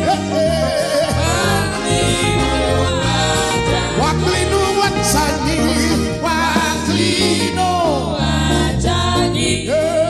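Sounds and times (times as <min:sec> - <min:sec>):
gospel band playing: 0:00.0 - 0:10.0
man singing lead: 0:00.0 - 0:10.0.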